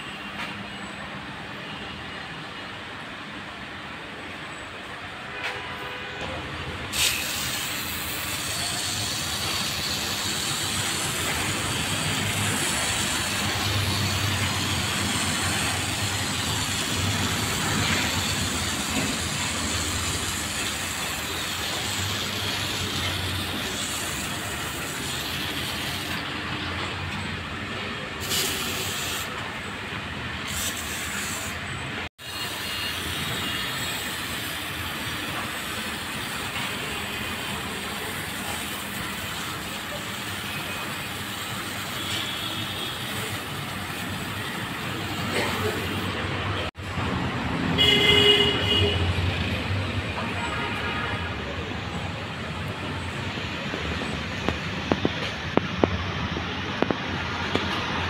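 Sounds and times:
water spraying from nozzle: 6.9s - 26.3s, 28.2s - 29.4s, 30.4s - 46.1s.

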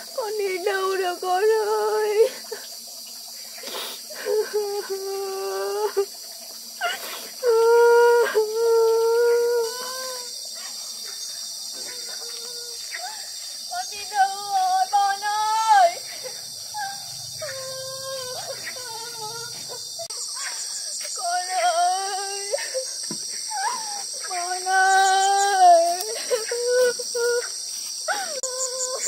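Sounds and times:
insects chirring: 0.0s - 29.0s
child crying and whimpering: 6.8s - 10.3s, 14.0s - 19.8s, 21.2s - 27.5s, 28.1s - 29.0s.

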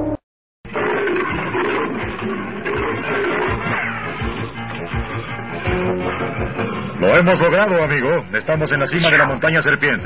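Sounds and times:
big cat roar: 0.7s - 4.4s
music: 0.7s - 10.0s.

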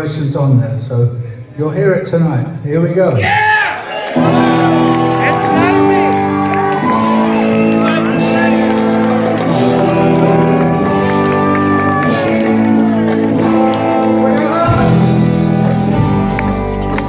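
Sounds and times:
electric guitar chords ringing: 4.2s - 17.0s
live rock band playing: 4.2s - 17.0s.

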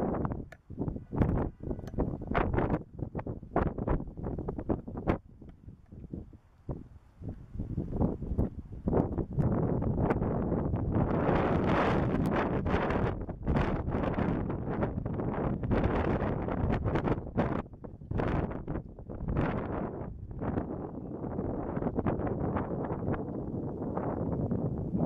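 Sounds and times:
wind gusting across microphone: 0.0s - 25.0s.

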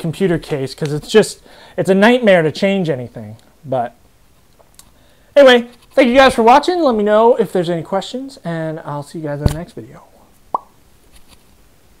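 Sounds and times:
faint room hiss: 0.0s - 12.0s
short pop: 10.5s - 10.8s.

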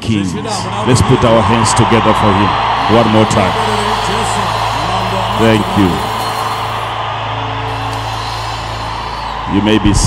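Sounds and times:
crowd applauding: 0.5s - 10.0s.

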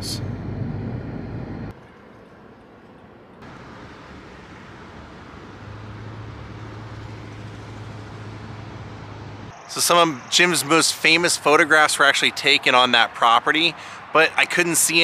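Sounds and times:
low steady hum: 0.0s - 2.0s
car road and engine noise: 0.0s - 15.0s.

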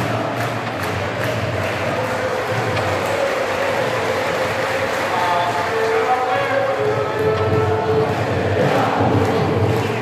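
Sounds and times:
crowd chanting: 0.0s - 10.0s.

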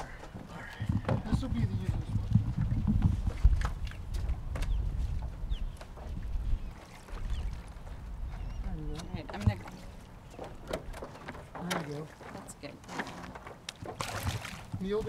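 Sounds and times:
board and paddle knocking: 8.9s - 9.8s.

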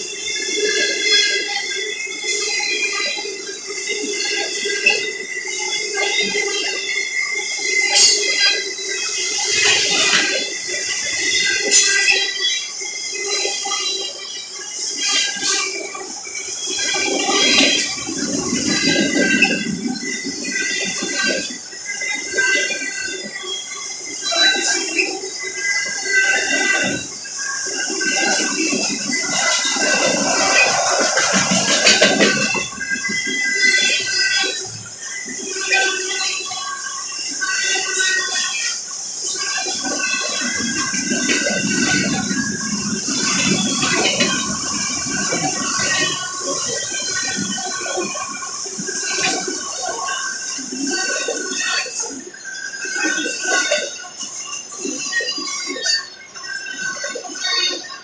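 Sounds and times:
train wheels rumbling on rail: 0.0s - 56.1s.

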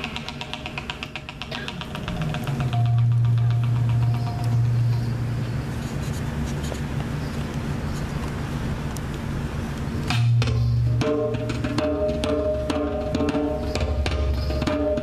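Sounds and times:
light percussion hits: 0.0s - 7.6s, 10.0s - 15.0s
rapid percussion ticking: 0.0s - 7.8s, 8.9s - 15.0s
deep held bass note: 2.4s - 5.6s.

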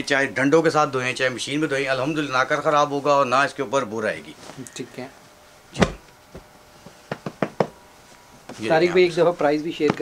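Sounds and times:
sharp knocks: 7.1s - 7.8s
person speaking: 8.5s - 10.0s.

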